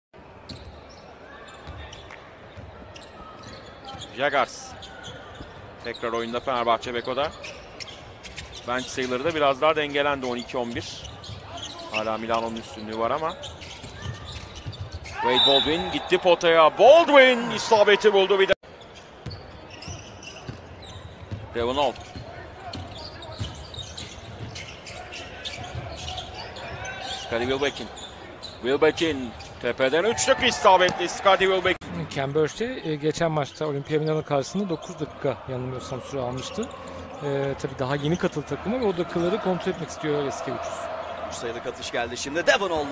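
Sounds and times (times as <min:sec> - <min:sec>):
arena crowd murmur: 0:34.3 - 0:42.9.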